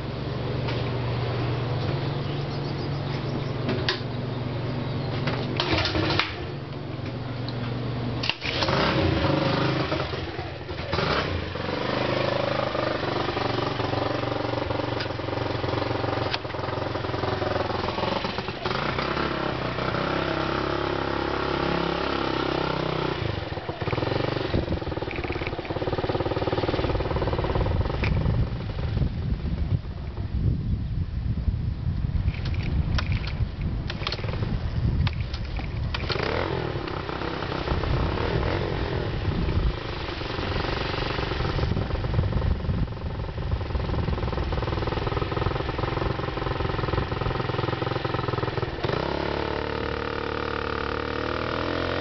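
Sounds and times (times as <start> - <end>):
motorized bicycle engine revving: 8.2 - 29.2, 35.5 - 52.0
wind on microphone: 23.3 - 49.1.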